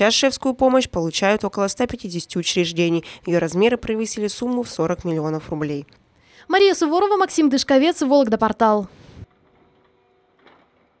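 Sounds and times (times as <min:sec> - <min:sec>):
faint steady hum: 0:00.0 - 0:09.3.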